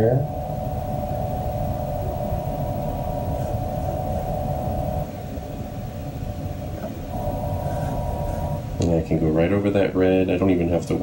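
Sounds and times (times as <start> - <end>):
steady droning hum: 0.0 - 11.0.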